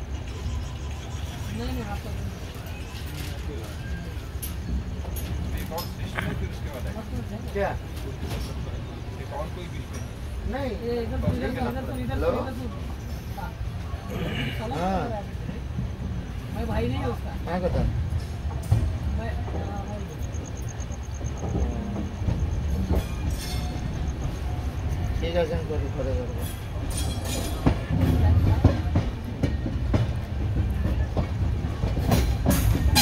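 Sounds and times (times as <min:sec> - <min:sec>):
train coach rumbling on track: 0:00.0 - 0:33.0.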